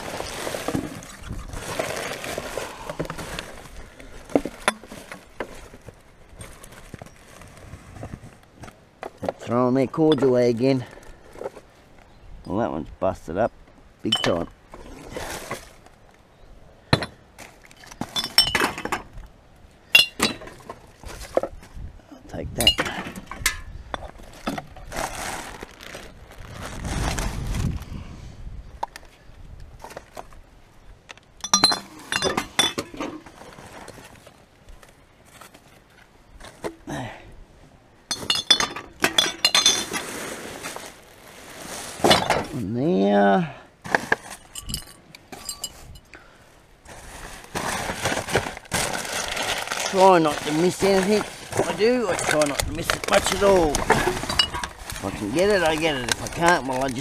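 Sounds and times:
glass bottles clinking: 0:14.1 - 0:14.6, 0:17.8 - 0:19.1, 0:19.9 - 0:20.7, 0:22.6 - 0:24.2, 0:31.4 - 0:33.2, 0:38.1 - 0:40.0, 0:44.2 - 0:46.0, 0:50.0 - 0:54.8.

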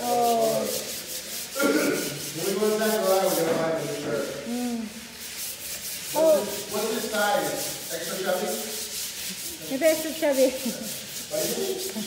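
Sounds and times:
steady rasping hiss: 0:00.0 - 0:12.0.

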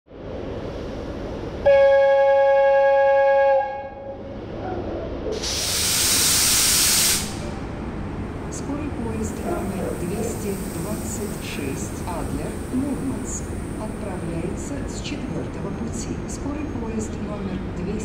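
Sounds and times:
electric locomotive horn: 0:01.6 - 0:04.2
pneumatic air hiss: 0:05.4 - 0:07.4.

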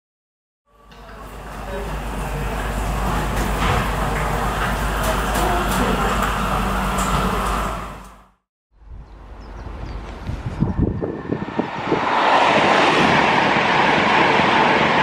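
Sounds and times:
station platform rumble and hum: 0:00.7 - 0:15.0.

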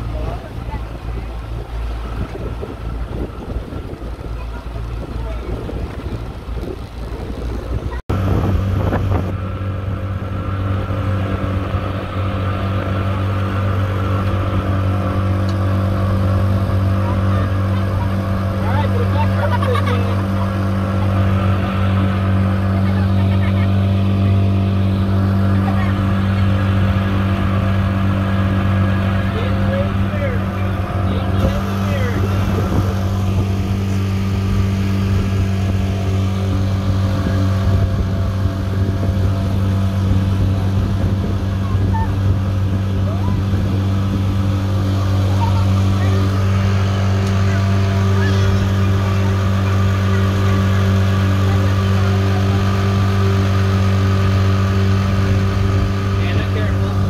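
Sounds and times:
outboard motor running: 0:00.0 - 0:57.0.

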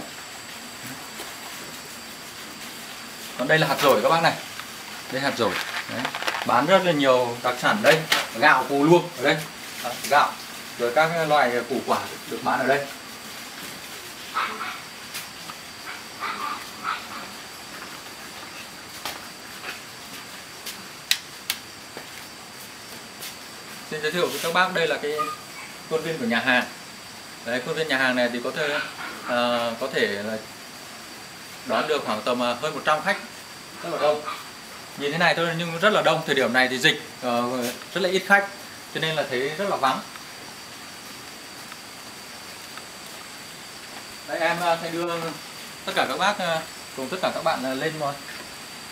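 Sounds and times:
outdoor hiss: 0:00.0 - 0:48.9
dog barking: 0:14.3 - 0:14.8, 0:15.8 - 0:17.4, 0:25.1 - 0:25.8, 0:28.6 - 0:29.4.

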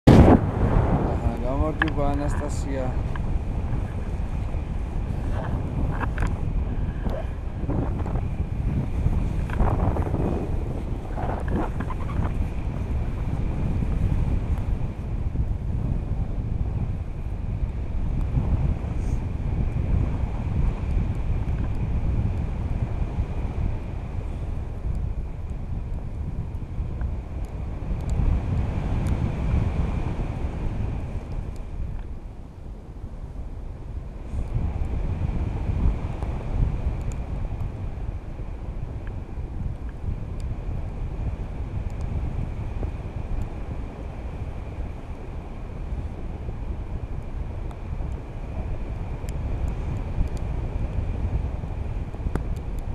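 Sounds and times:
wind buffeting microphone: 0:00.0 - 0:52.9.

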